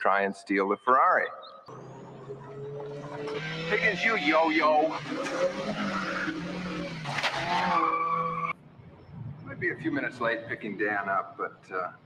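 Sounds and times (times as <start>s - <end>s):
car engine running: 1.7s - 7.8s
tires squealing: 1.7s - 8.6s.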